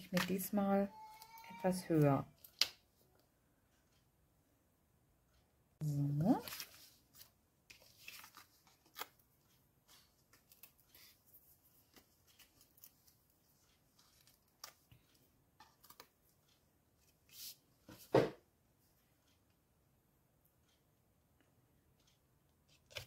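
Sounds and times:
paper rustling: 6.3s - 16.2s.

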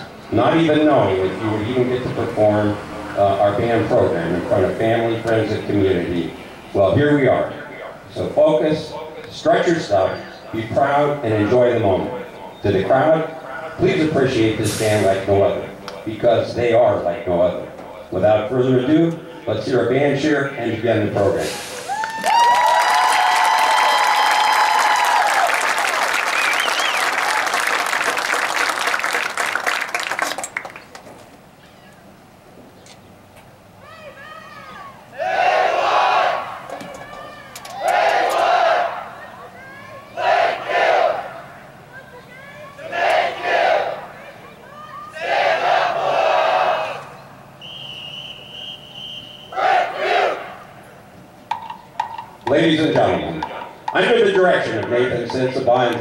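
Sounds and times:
crowd cheering and applauding: 21.8s - 31.0s
high steady whistle: 26.3s - 27.2s, 47.6s - 49.6s
group shouts: 33.8s - 41.6s, 42.3s - 47.1s, 49.5s - 50.6s.

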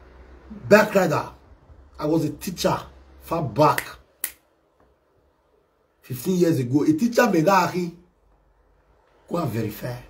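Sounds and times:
finger snap: 3.7s - 5.0s.

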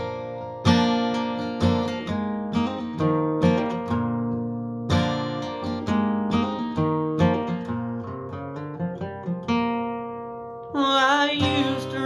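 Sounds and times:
acoustic guitar strums and picked notes: 0.0s - 12.0s.

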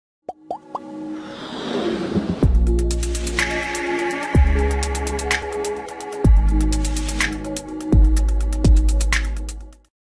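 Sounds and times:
whoosh: 1.1s - 3.4s.

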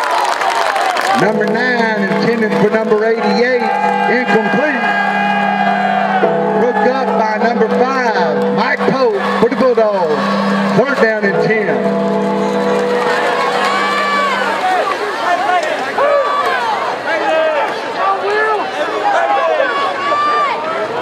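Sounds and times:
crowd shouting: 0.0s - 21.0s
band held chord: 1.2s - 15.3s.

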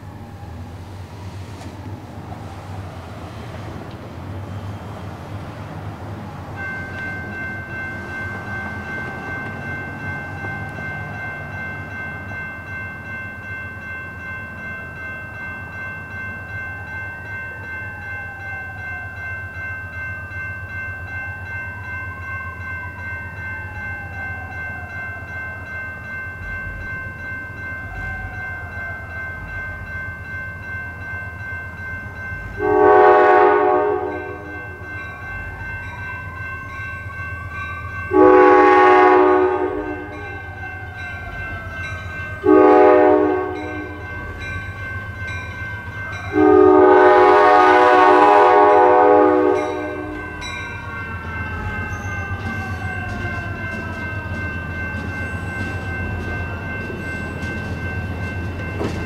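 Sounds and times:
train rumbling: 0.0s - 59.0s
train air horn blasts: 32.6s - 34.8s, 38.1s - 40.2s, 42.4s - 44.0s, 46.3s - 50.3s.

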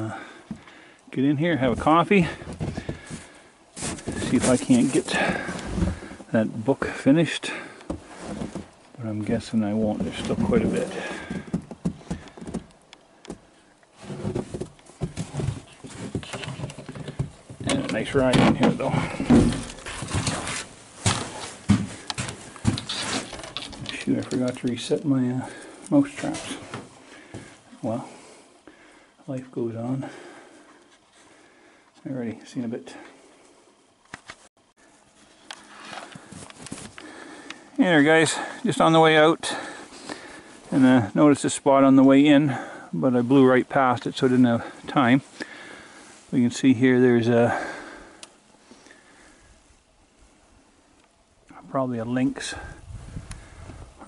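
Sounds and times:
footsteps crunching in snow: 1.6s - 6.2s, 14.0s - 16.4s, 19.0s - 23.3s
boots on wooden deck: 1.7s - 4.4s, 7.9s - 8.7s, 9.9s - 12.7s, 13.3s - 23.2s.

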